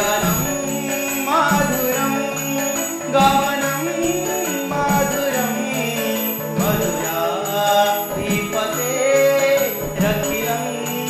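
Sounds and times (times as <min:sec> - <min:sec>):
instrumental accompaniment: 0:00.0 - 0:11.0
light jingling: 0:00.0 - 0:11.0
man singing devotional song: 0:00.0 - 0:11.0.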